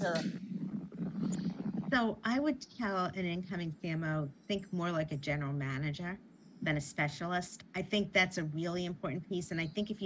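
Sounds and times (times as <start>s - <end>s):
low steady hum: 0.0s - 10.0s
woman speaking: 0.0s - 10.0s.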